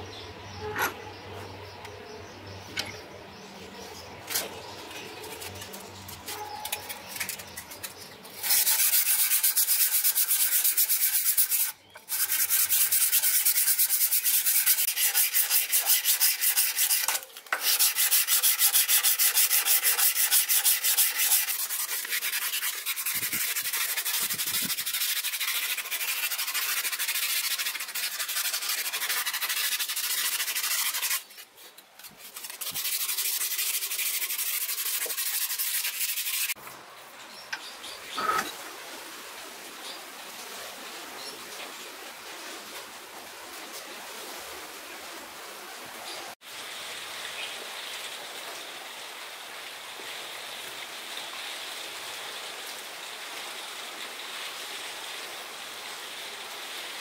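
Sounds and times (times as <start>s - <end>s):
sandpaper rubbing on metal: 5.0s - 36.6s.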